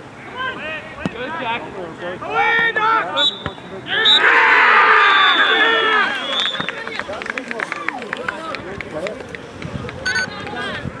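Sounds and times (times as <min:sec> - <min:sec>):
voices shouting: 0:02.2 - 0:08.1
whistle blast: 0:03.2 - 0:04.3, 0:05.0 - 0:06.8.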